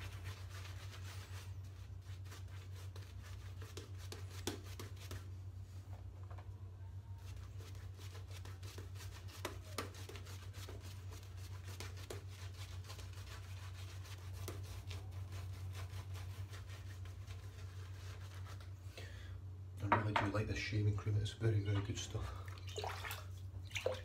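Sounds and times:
shaving brush rubbing on scalp: 0.0s - 5.3s, 7.2s - 18.8s
low steady hum: 0.0s - 24.0s.

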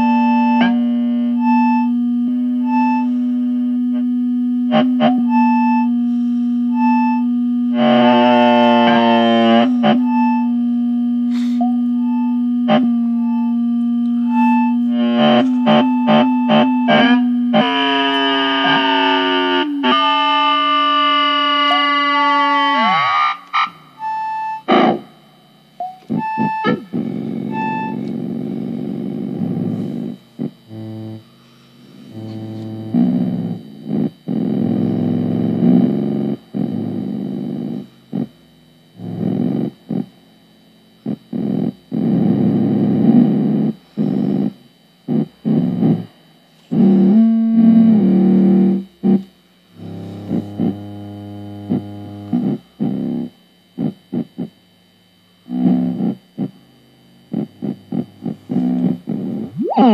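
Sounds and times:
short synth beeps: 0.0s - 22.2s, 23.6s - 25.0s, 25.7s - 28.1s, 58.5s - 59.9s
synthesizer tone diving in pitch: 0.0s - 54.6s, 55.4s - 59.9s
buzzy low drones: 0.0s - 59.9s.

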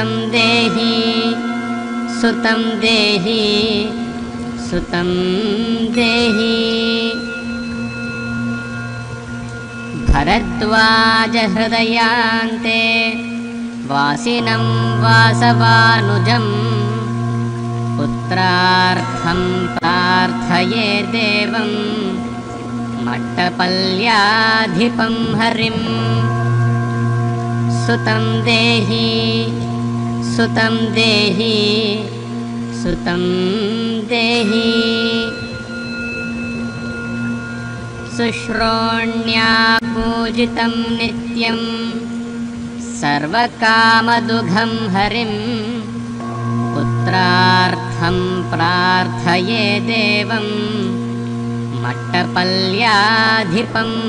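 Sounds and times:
chanted mantra: 0.0s - 54.0s
sustained drone tones: 0.0s - 54.0s.

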